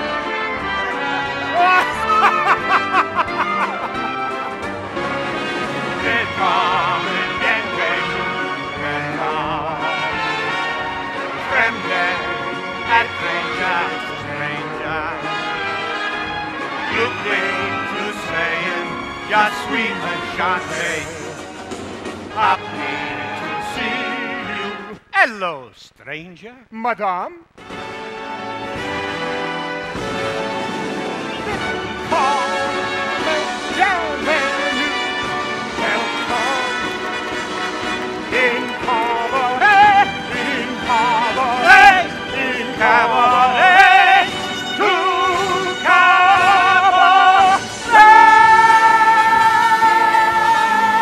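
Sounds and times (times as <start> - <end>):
stage band music: 0.0 - 6.0, 25.2 - 51.0
person laughing: 1.6 - 4.3
cast singing with band: 6.0 - 10.6, 38.3 - 51.0.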